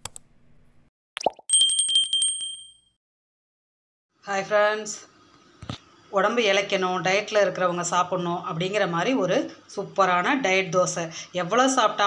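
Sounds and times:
notification bell trill: 1.2s - 2.9s.

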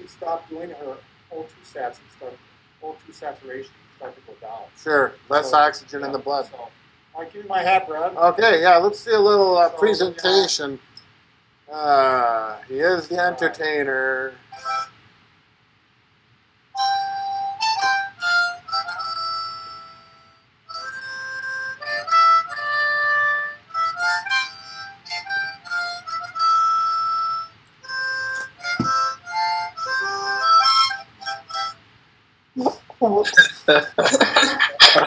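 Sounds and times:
harmonica notes: 14.4s - 15.0s, 16.8s - 31.9s.

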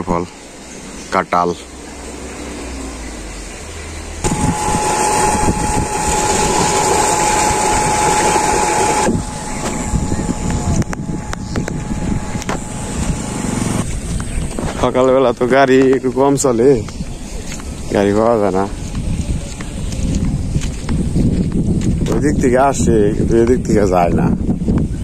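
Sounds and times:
pump steady tone: 4.1s - 14.6s
water gushing from pipe: 4.2s - 9.4s.

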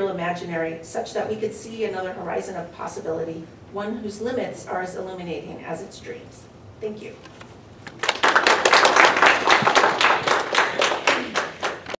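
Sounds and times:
audience applause: 8.0s - 12.0s.

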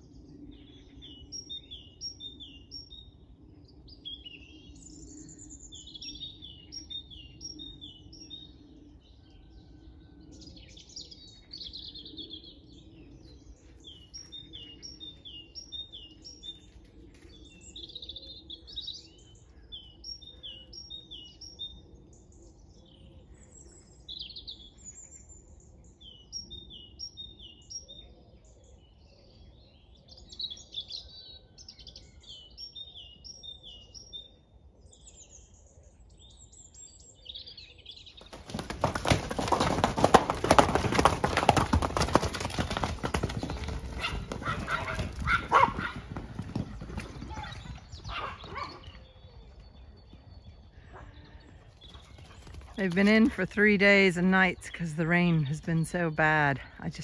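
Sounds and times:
songbirds singing: 0.0s - 57.0s.

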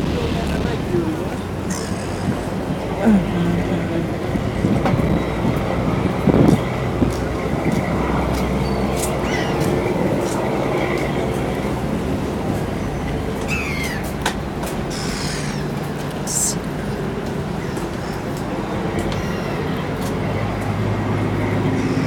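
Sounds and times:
faint background voices: 0.0s - 11.7s
low engine rumble: 0.0s - 22.0s.

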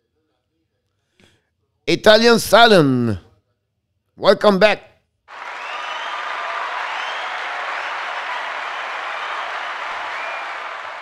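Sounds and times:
crowd applause and cheering: 5.3s - 11.0s.

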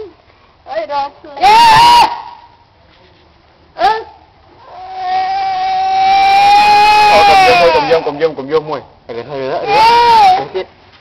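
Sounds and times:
toddler crying: 4.6s - 8.2s, 9.6s - 10.6s.

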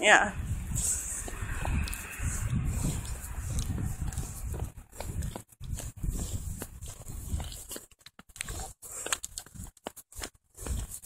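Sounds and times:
wind buffeting microphone: 0.0s - 7.8s.

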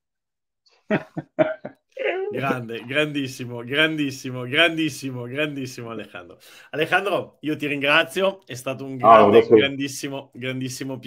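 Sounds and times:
man laughing: 0.9s - 3.1s.

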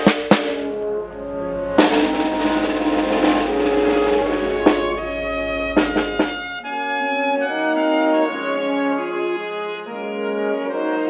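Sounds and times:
wind band playing held chords: 0.0s - 11.0s.

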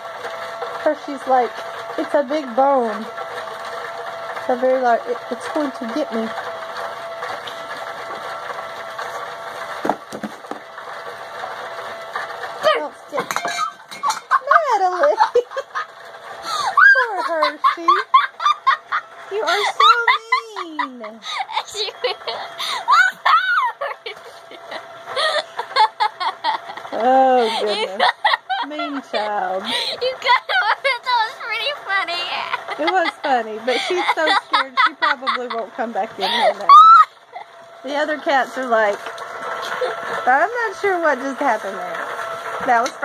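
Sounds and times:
motor hum: 0.0s - 43.0s
woman laughing: 13.2s - 31.6s, 32.2s - 38.0s, 39.6s - 40.0s
girl giggling: 16.5s - 31.7s, 32.3s - 35.6s, 36.2s - 37.5s.

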